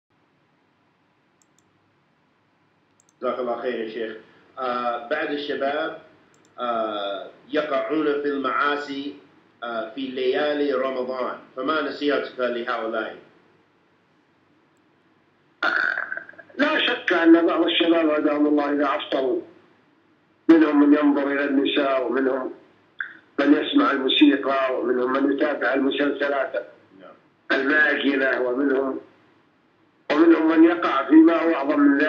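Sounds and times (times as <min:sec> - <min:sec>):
faint room hiss: 0:00.2 - 0:32.0
tiny clicks: 0:01.4 - 0:01.8, 0:02.9 - 0:03.2, 0:06.3 - 0:06.6
man speaking: 0:03.2 - 0:13.2, 0:16.4 - 0:19.5, 0:20.5 - 0:29.1, 0:30.1 - 0:32.0.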